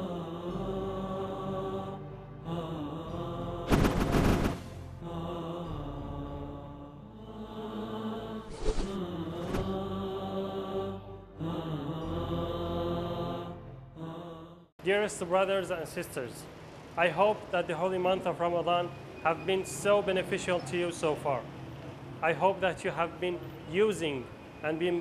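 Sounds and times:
background music: 0.0s - 21.4s
loud noise bursts: 3.7s - 4.8s
person chanting: 5.0s - 14.4s.

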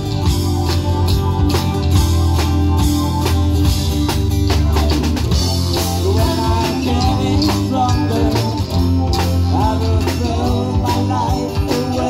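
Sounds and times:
drum kit: 0.0s - 12.0s
electric bass: 0.0s - 12.0s
electric guitar: 0.0s - 12.0s.

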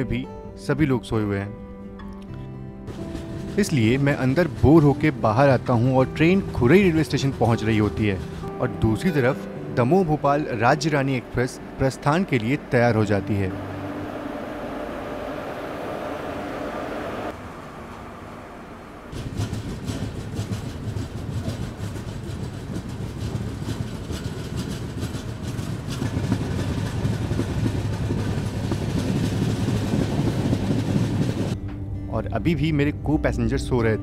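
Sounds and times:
train wheels clickety-clack on rails: 2.9s - 9.2s, 19.1s - 31.6s.

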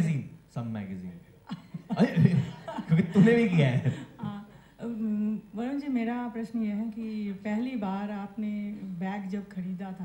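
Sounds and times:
man speaking: 2.0s - 4.1s.

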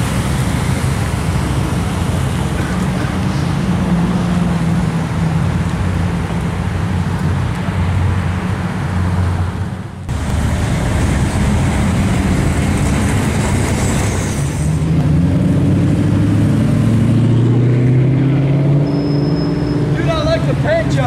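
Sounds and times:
street traffic: 0.0s - 21.0s
approaching car engine rising: 8.2s - 20.1s
sports car engine driving by: 14.7s - 21.0s.

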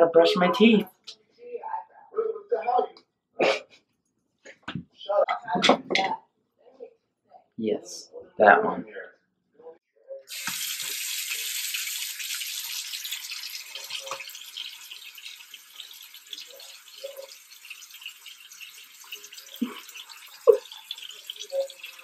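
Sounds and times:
faucet water splashing into sink: 10.3s - 22.0s.

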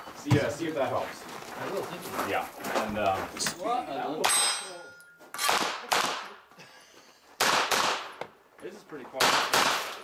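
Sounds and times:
metallic clangs of steel targets: 4.2s - 5.7s
quiet gunshots: 5.4s - 6.4s, 7.4s - 8.3s, 9.2s - 10.0s.

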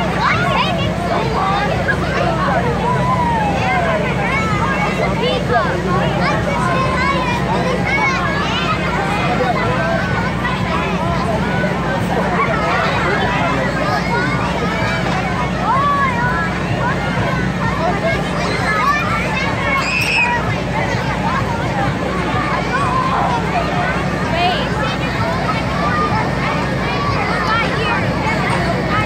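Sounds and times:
children chattering and calling: 0.0s - 29.0s
ride machinery humming: 0.0s - 29.0s.

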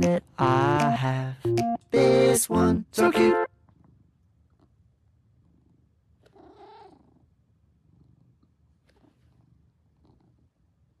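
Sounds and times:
cat purring: 3.6s - 11.0s.

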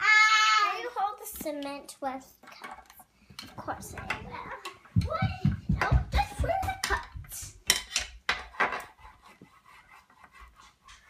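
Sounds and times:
toy tool scraping wooden box: 8.4s - 11.0s.

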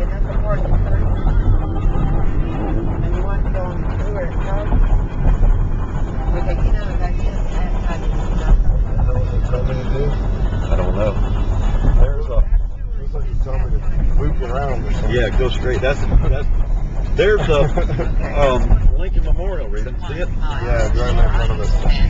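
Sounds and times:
car cabin road rumble: 0.0s - 22.0s
indistinct voices talking: 0.0s - 22.0s.

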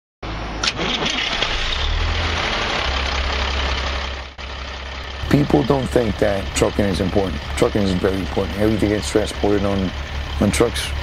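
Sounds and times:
truck engine running: 0.2s - 11.0s.

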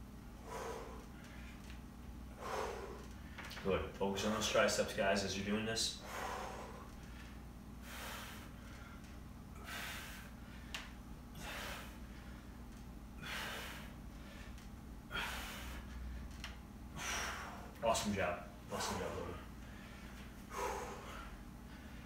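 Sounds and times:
man breathing hard: 0.4s - 3.6s, 6.0s - 12.6s, 13.2s - 17.8s, 18.7s - 22.0s.

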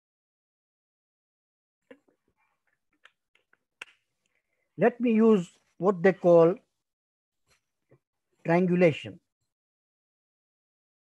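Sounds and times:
man speaking: 4.8s - 6.6s, 8.5s - 9.2s.

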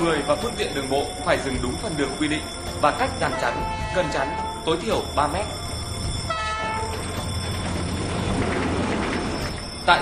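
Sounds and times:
train rumbling past: 0.0s - 10.0s
locomotive horn blast: 3.3s - 4.6s, 6.3s - 6.9s.

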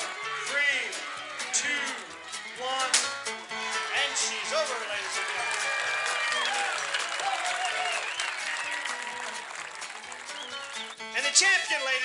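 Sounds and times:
background music: 0.0s - 12.0s
crowd noise: 0.0s - 12.0s
excited voices: 3.5s - 10.5s
people clapping: 3.6s - 11.9s.

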